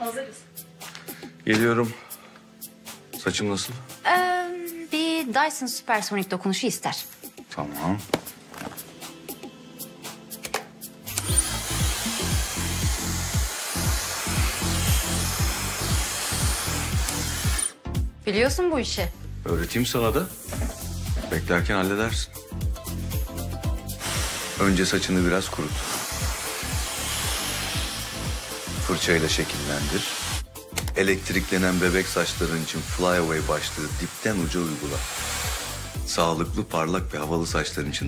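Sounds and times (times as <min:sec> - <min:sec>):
music with deep thudding beat: 0:08.0 - 0:34.0
hair dryer blowing: 0:11.1 - 0:17.7, 0:23.9 - 0:30.5, 0:31.1 - 0:36.0.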